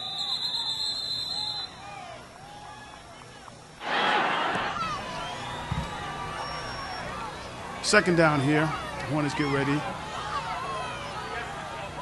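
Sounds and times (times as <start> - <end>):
referee's whistle blast: 0.0 - 1.8
distant shouting voices: 0.0 - 12.0.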